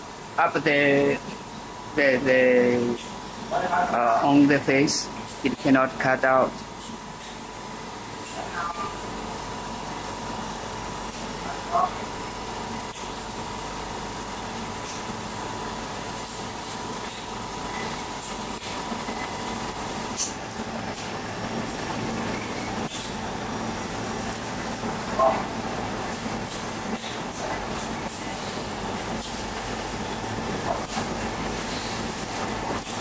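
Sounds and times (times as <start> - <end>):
machine hum: 0.0 - 33.0.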